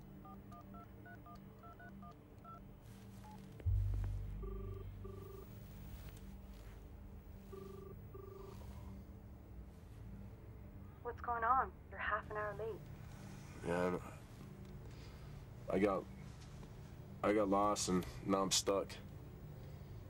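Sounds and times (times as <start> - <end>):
phone ringback tone: 0.2 - 6.1, 7.4 - 9.0
sudden low rumble: 3.6 - 7.2.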